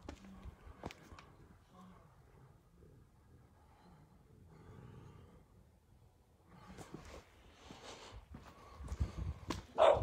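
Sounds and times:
dog barking: 9.8 - 10.0.

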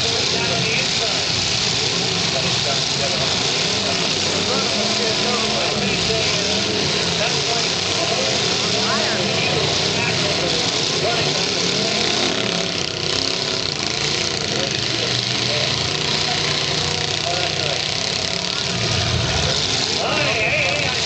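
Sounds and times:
car engines revving: 0.0 - 21.0
crowd voices: 0.0 - 21.0.

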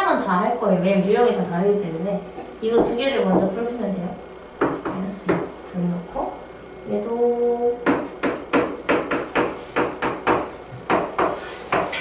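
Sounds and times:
marker knocking on writing board: 4.6 - 5.5, 7.8 - 12.0.

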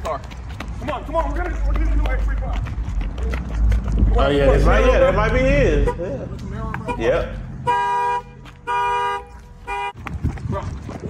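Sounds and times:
car horn honking: 5.2 - 10.0.

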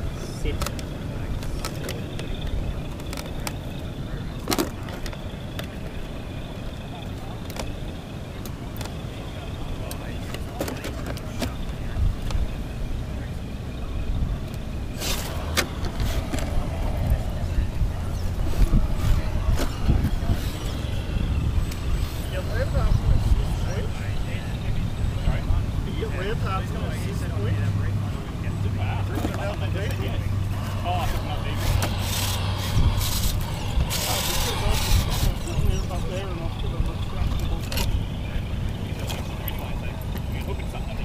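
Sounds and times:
high electric motor whine: 11.6 - 27.8, 29.5 - 41.0
wind on microphone: 13.7 - 25.9, 30.0 - 41.0.

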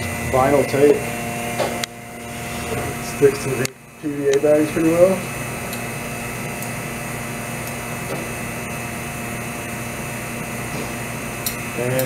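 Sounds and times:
vacuum pump humming and hissing: 0.0 - 12.0.

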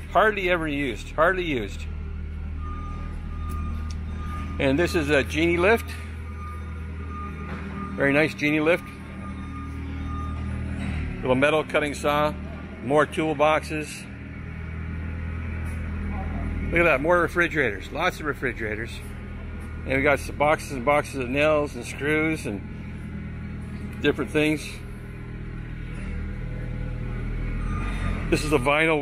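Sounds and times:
low machine hum: 0.0 - 29.0
vehicle back-up alarm beeping: 0.0 - 29.0.

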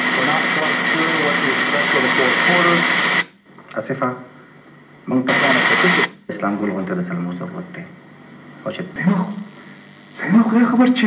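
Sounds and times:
loud steady hiss: 0.0 - 11.0
person speaking: 8.6 - 11.0.

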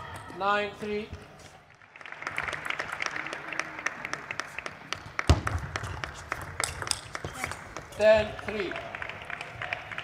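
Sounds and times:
small crowd clapping: 1.7 - 10.0.

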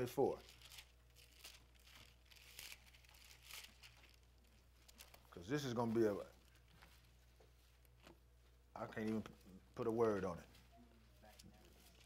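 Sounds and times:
pages being turned: 0.4 - 4.2.

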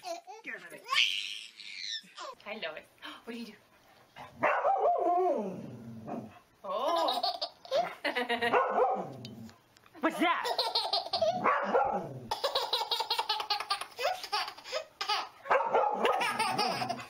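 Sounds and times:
dog barking: 4.4 - 5.0, 8.4 - 9.1, 11.4 - 12.1, 15.4 - 16.4
baby laughing: 6.7 - 8.4, 10.4 - 11.4, 12.3 - 15.4, 16.0 - 17.0.

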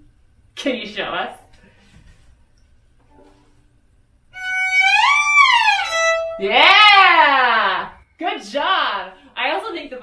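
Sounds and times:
violin sliding note: 4.4 - 6.4.

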